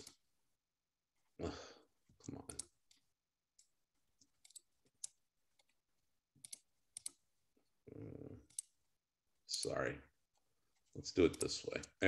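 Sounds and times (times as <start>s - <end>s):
computer mouse clicks: 2.4s - 5.8s, 6.4s - 7.2s, 8.4s - 8.8s.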